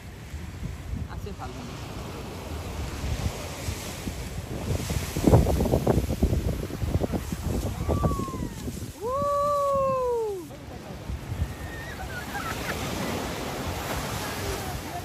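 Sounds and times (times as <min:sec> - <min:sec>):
ocean surf: 0:00.0 - 0:15.0
wind buffeting microphone: 0:00.0 - 0:15.0.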